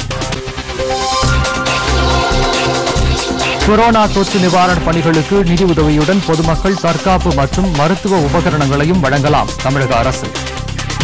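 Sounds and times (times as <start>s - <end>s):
music with percussive beat: 0.0s - 11.0s
man reading news: 3.6s - 10.2s.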